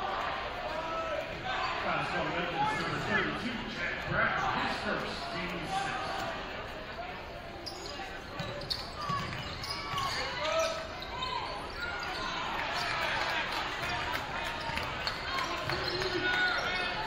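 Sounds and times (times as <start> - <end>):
sneakers squeaking: 7.3 - 17.0.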